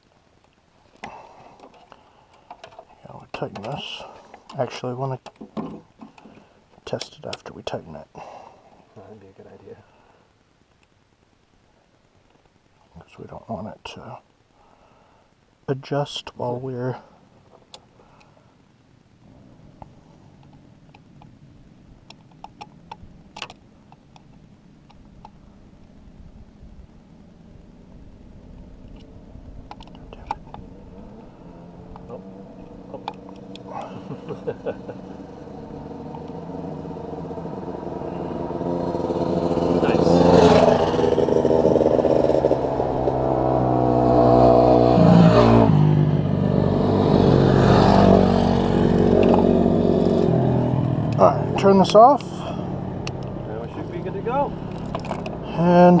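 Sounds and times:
vehicle engine revving: 30.1 - 56.0.

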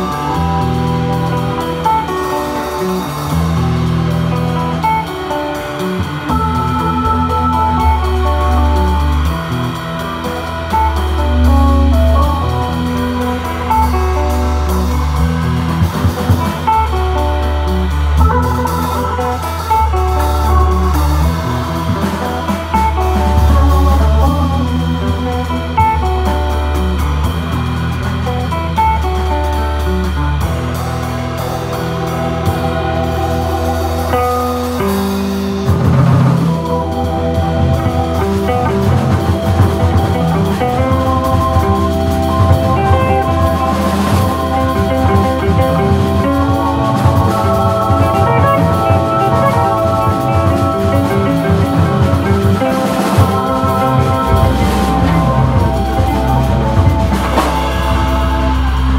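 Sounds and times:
drum kit: 0.0 - 58.9
electric guitar: 0.0 - 58.9
organ with bass notes: 0.0 - 58.9.

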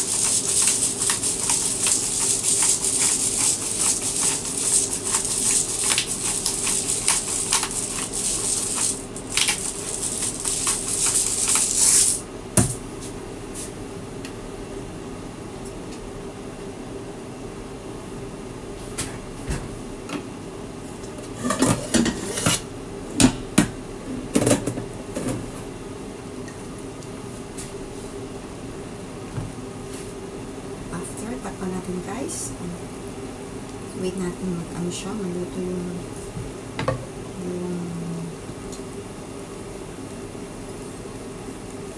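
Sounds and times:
pepper grinder crunching peppercorns: 0.0 - 12.2
grinder knocking on counter: 12.6 - 12.8
low steady hum: 22.6 - 41.9.

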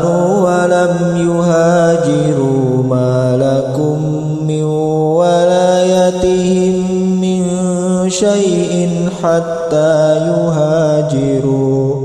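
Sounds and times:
person chanting: 0.0 - 12.0.

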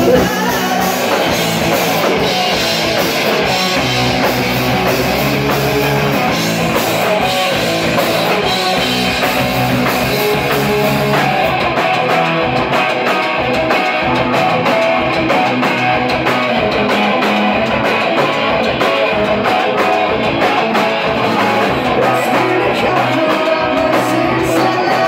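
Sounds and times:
driving drum beat: 0.0 - 25.0
electric guitars: 0.0 - 25.0.

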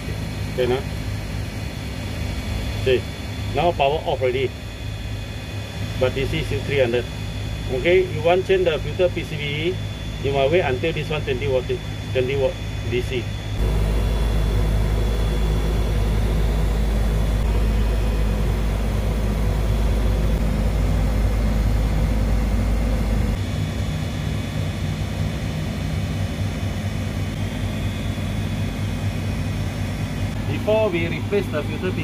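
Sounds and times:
air conditioning units droning: 0.0 - 32.0
heavy low rumble: 5.6 - 23.5.

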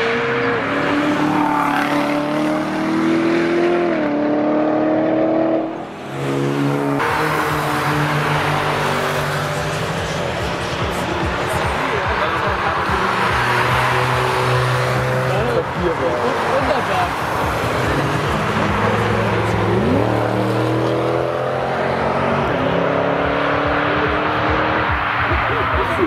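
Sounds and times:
engine revving up: 0.0 - 10.2, 17.0 - 25.0
car engines driving past: 0.0 - 26.0.

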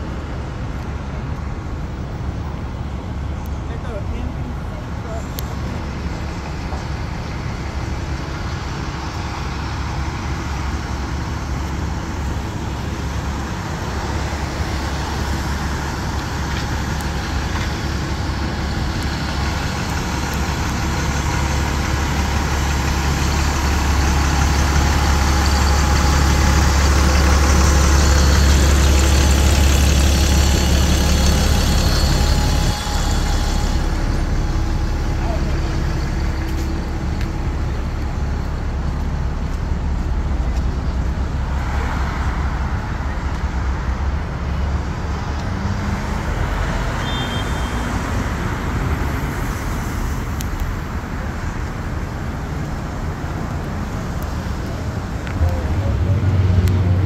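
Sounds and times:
bus engine idling: 0.0 - 57.0
city traffic: 0.0 - 57.0.

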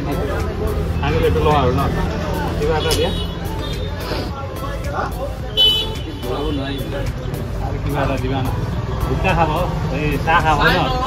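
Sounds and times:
faint voices: 0.0 - 11.0
street traffic hum: 0.0 - 11.0.

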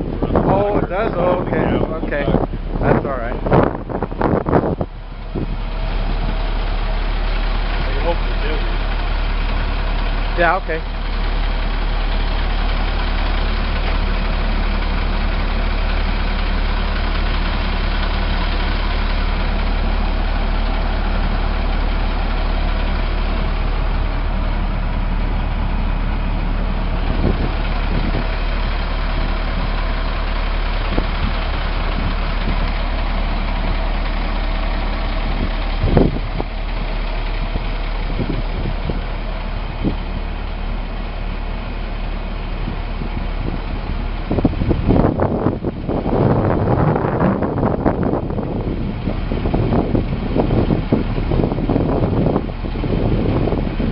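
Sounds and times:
diesel truck engine idling: 0.0 - 53.9
engine knocks: 0.0 - 53.9.

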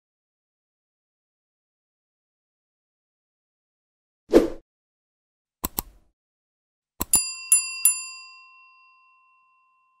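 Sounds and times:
mouse clicks: 5.6 - 6.0
small bell dinging: 7.1 - 10.0.

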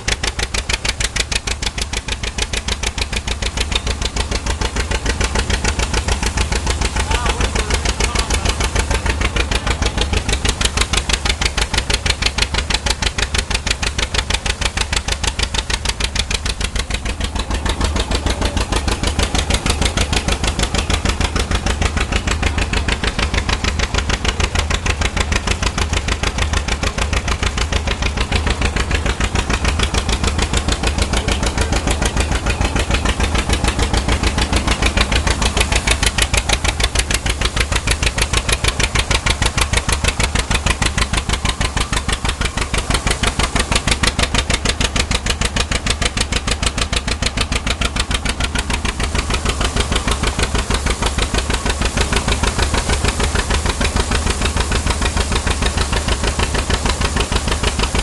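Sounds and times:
tractor engine running steadily: 0.0 - 58.0.

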